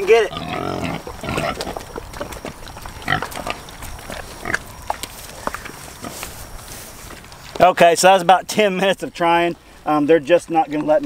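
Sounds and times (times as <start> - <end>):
hogs grunting: 0.0 - 6.5
clicks and rustles of eating: 1.1 - 7.7.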